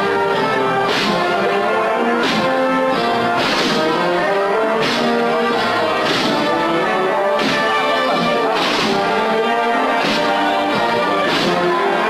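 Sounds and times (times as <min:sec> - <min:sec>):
sharp percussion strikes: 0:00.0 - 0:12.0
wind band playing a march: 0:00.0 - 0:12.0.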